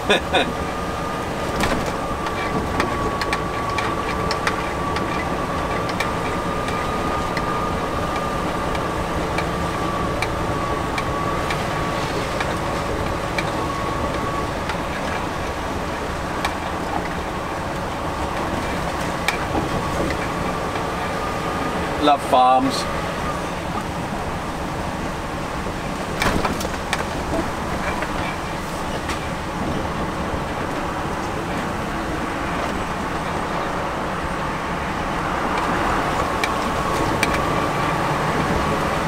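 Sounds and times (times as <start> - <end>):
truck engine and tyre rumble: 0.0 - 39.0.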